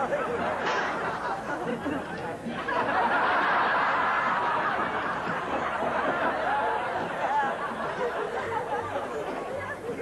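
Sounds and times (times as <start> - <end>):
audience laughter: 0.0 - 10.0.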